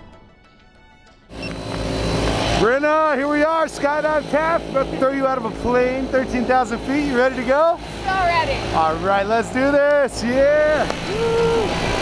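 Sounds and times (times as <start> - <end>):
man talking: 2.6 - 7.8, 8.7 - 10.9.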